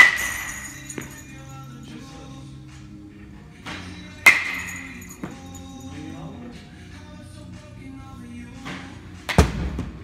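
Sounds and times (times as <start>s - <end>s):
baseball bat striking ball: 0.0s - 1.1s, 4.2s - 5.4s.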